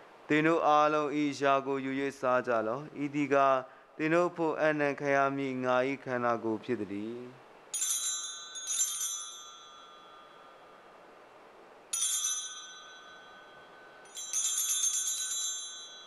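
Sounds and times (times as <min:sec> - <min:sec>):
small handbells jingling: 0:07.7 - 0:10.7, 0:11.9 - 0:16.0.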